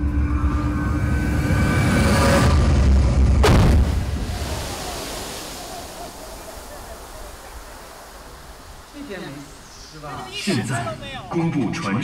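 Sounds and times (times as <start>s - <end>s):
deep rumble: 0.0s - 4.6s
boom with falling whoosh: 1.6s - 5.0s
steady hiss: 4.2s - 11.3s.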